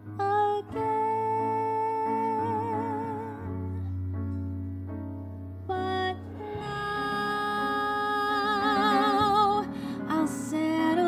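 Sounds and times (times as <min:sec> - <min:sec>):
woman singing long held note: 0:05.7 - 0:11.0.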